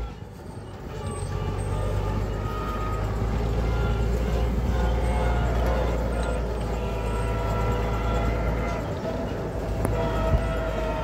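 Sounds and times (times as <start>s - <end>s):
tractor diesel engine droning: 0.0s - 11.0s.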